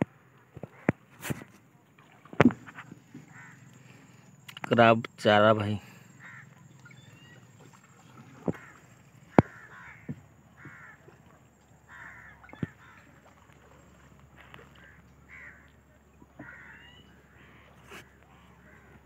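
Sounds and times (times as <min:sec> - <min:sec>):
sharp knocks from boat: 0:02.2 - 0:03.4, 0:08.4 - 0:11.2, 0:12.5 - 0:13.1
birds calling: 0:02.8 - 0:19.0.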